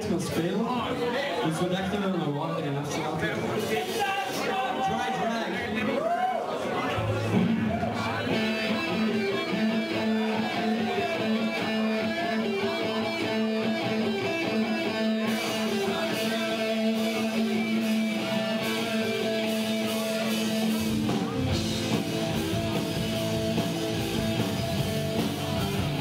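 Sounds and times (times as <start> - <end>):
amplified electric guitar riff: 7.0 - 26.0.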